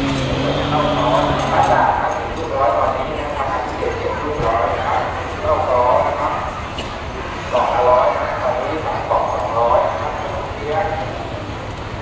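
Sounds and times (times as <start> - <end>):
crowd voices: 0.0 - 11.8.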